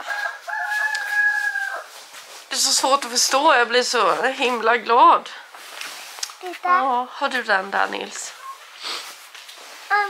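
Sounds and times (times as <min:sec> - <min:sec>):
rooster crowing: 0:00.0 - 0:02.0.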